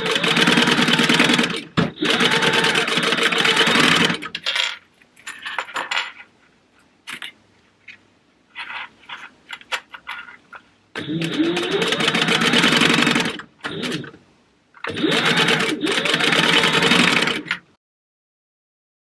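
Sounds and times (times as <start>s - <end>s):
sewing machine stitching: 0.0s - 4.3s, 11.0s - 14.2s, 14.8s - 17.6s
light clicks and handling sounds: 4.4s - 10.8s.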